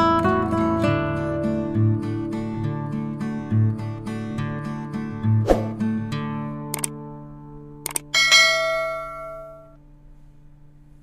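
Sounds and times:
low sustained music tone: 0.0 - 11.0
quick double click: 6.7 - 7.0, 7.8 - 8.1
bright bell chime: 8.2 - 9.8.

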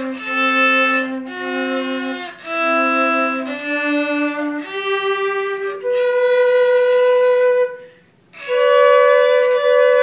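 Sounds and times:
flute and violin duet: 0.0 - 10.0.

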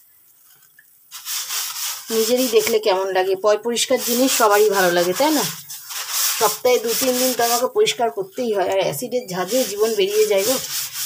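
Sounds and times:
sink being scrubbed: 1.1 - 11.0
woman talking: 2.1 - 5.6, 6.3 - 10.8.

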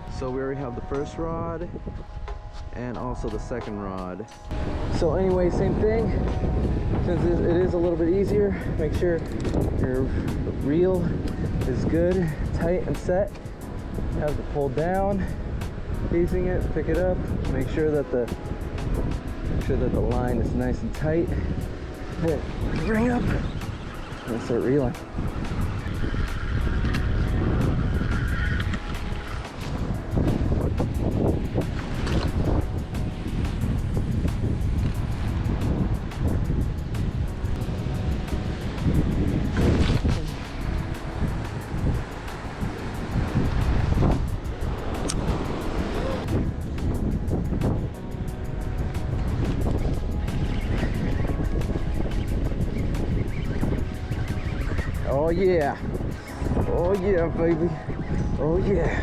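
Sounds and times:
wind buffeting microphone: 0.0 - 59.0
surf washing on rocks: 3.0 - 28.0, 28.6 - 59.0.

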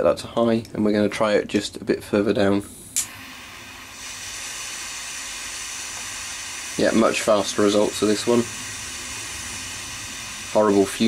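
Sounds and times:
jet flame hissing: 2.6 - 11.0
lighter clicking alight: 2.9 - 3.4.

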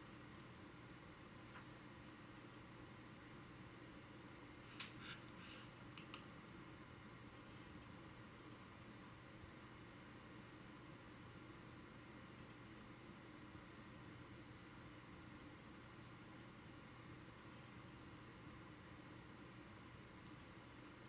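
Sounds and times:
faint microphone hiss and hum: 0.0 - 21.0.

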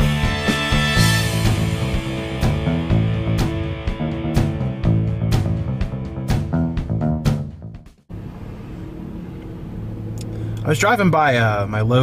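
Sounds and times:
car engine: 8.0 - 11.9
low hum: 8.1 - 11.9
road noise: 8.1 - 12.0.

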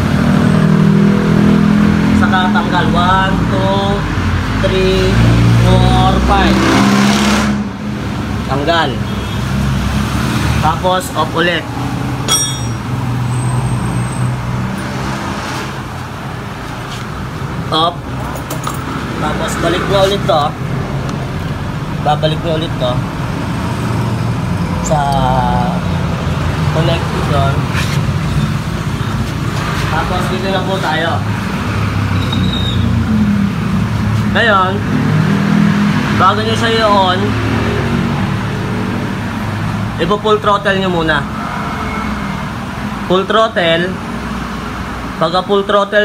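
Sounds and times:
low rumble of traffic: 0.0 - 46.0.

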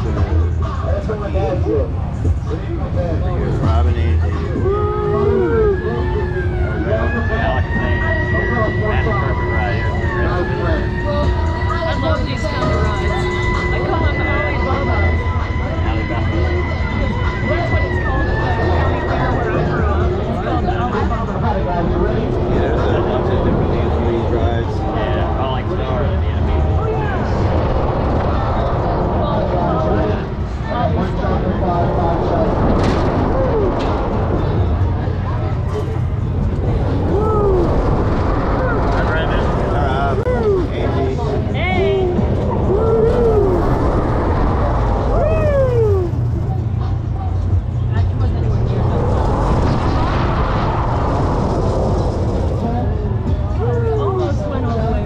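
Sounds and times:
low rumble: 0.0 - 55.0
people's voices: 0.0 - 55.0.

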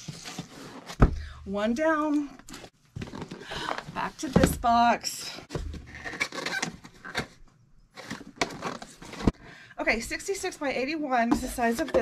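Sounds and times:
cardboard packaging rustling: 0.0 - 1.0, 8.0 - 9.4.

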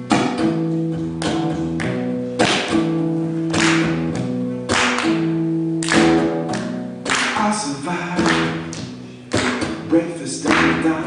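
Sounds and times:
acoustic guitar chords strummed hard: 0.0 - 11.0.

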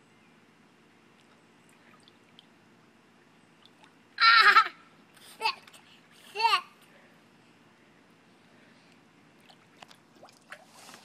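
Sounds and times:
faint background hiss: 0.0 - 11.0.

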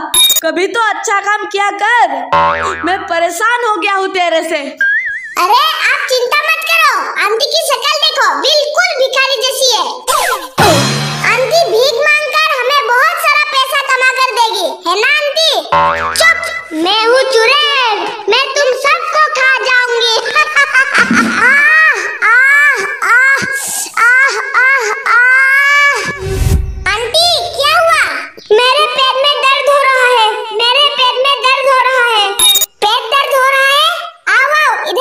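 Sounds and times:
cartoon rising whistle effect: 4.8 - 5.4.

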